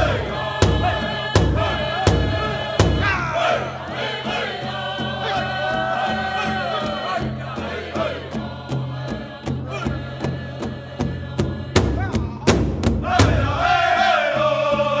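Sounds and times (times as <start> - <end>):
large drum beating: 0.0 - 4.0, 9.5 - 13.8
men singing together: 0.0 - 15.0.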